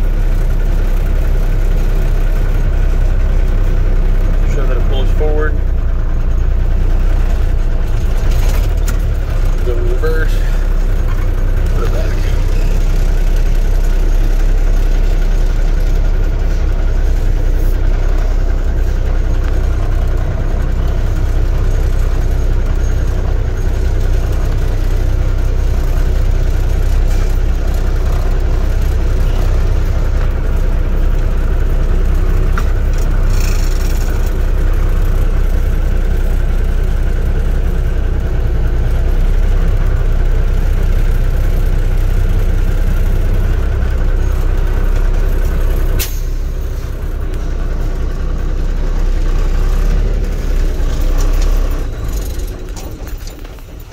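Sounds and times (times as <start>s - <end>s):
diesel truck engine idling: 0.0s - 53.9s.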